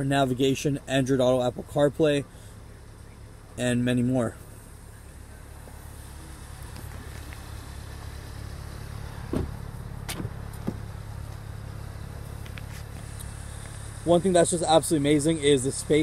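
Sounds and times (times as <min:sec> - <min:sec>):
car engine idling: 0:00.0 - 0:16.0.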